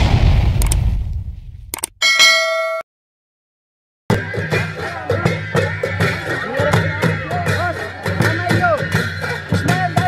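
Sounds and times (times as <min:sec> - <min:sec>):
low boom: 0:00.0 - 0:01.8
quick clicks: 0:00.6 - 0:00.8, 0:01.7 - 0:02.0
metallic bell-like ding: 0:02.0 - 0:02.9.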